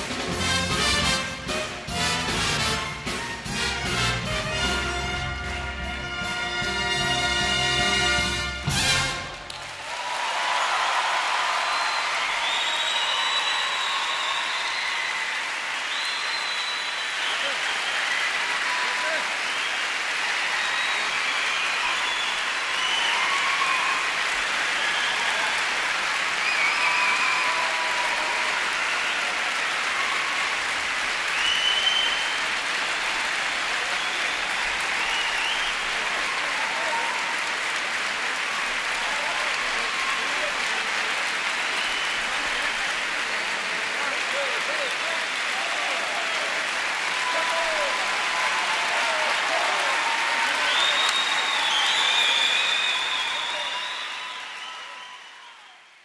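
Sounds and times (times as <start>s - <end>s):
audience applauding: 0.0s - 56.0s.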